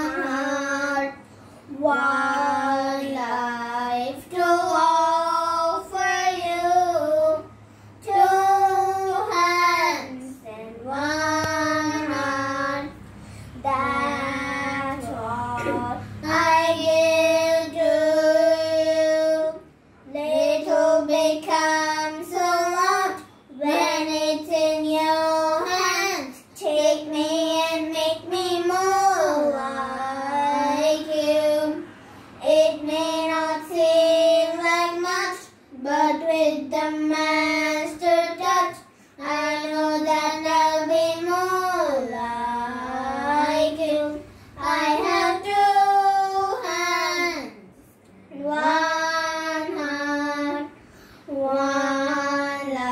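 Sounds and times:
children singing unaccompanied: 0.0 - 47.6, 48.3 - 52.9.

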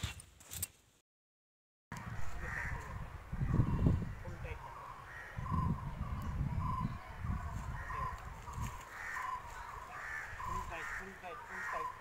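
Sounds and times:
bird calling: 2.4 - 12.0.

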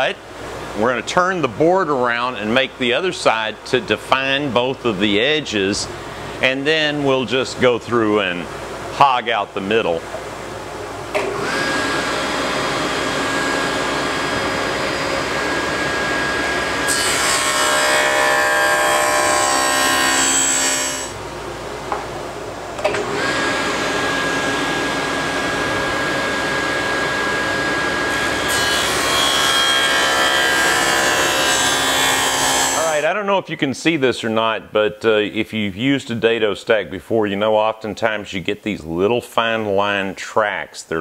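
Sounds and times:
saw cutting wood: 11.4 - 21.2, 23.1 - 33.0
table saw whine: 11.4 - 21.2, 23.0 - 33.0.

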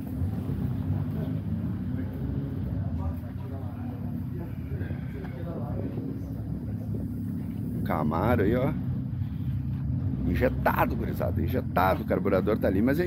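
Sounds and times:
car engine running: 0.0 - 13.0
faint chatter of people: 0.0 - 13.0.

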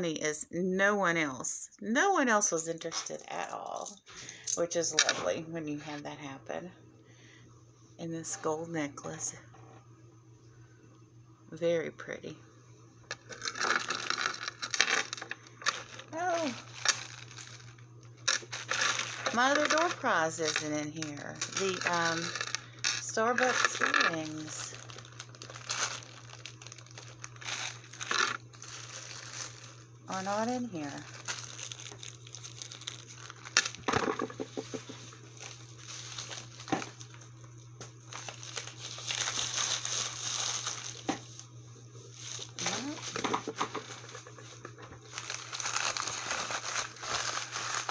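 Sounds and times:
steady low hum: 0.0 - 47.9
plastic bags crinkling: 13.1 - 37.4, 38.0 - 41.5, 42.1 - 47.9.

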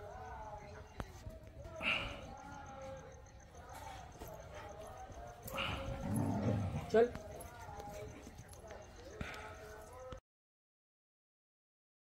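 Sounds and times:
dog vocalizing low: 5.5 - 7.0.

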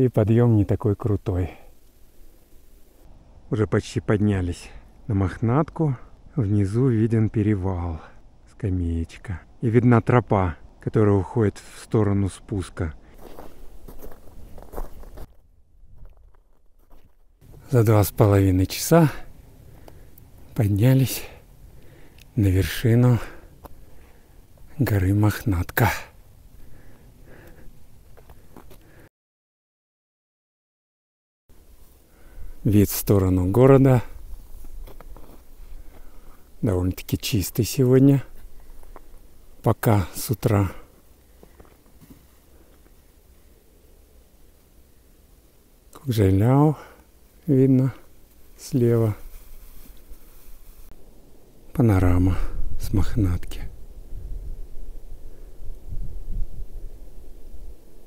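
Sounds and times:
faint low rumble: 0.0 - 11.3, 47.0 - 58.0
footsteps on trail: 13.1 - 17.9, 19.2 - 24.8, 26.6 - 29.0, 33.9 - 36.6, 38.3 - 43.3
footsteps in snow: 13.1 - 21.1, 33.0 - 36.7, 38.2 - 39.6, 40.8 - 43.5, 48.0 - 51.0
wind rumble on microphone: 51.0 - 58.0.

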